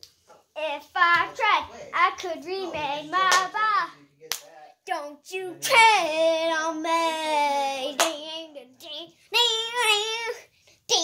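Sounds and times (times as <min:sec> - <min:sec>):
boy singing: 0:00.6 - 0:04.0, 0:04.8 - 0:11.0
sharp hand clap: 0:03.3 - 0:03.5, 0:04.3 - 0:04.5, 0:08.0 - 0:08.2.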